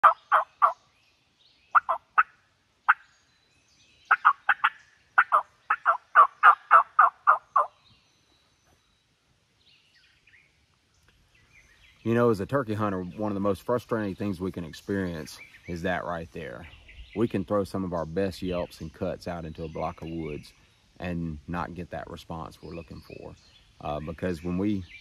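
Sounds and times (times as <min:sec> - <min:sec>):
turkey yelps on a mouth call: 0:00.0 - 0:00.8, 0:01.7 - 0:03.0, 0:04.1 - 0:07.7.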